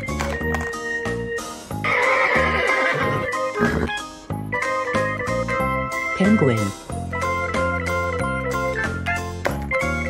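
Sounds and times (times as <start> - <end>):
background music with beat: 0.0 - 10.0
horse whinnying: 1.8 - 4.0.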